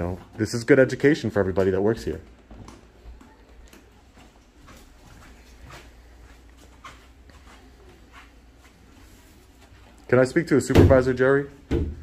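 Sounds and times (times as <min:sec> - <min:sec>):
footsteps scuffing on hard floor: 0:02.4 - 0:10.0.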